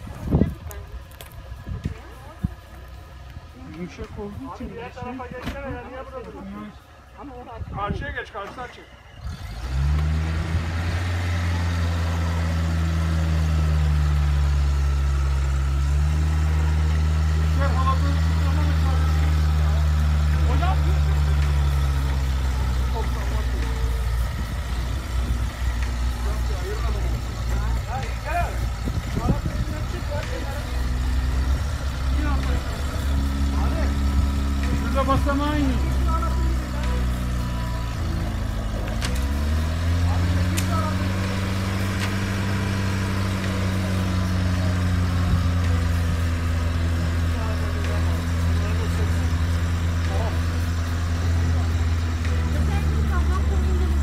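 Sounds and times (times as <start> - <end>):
faint voices: 0.0 - 9.4, 10.4 - 54.0
car engine running: 0.0 - 54.0.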